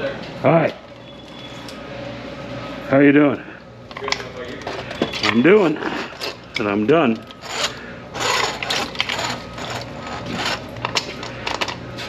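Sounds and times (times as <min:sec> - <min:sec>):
drain snake cable scraping and clicking: 0:03.9 - 0:11.8.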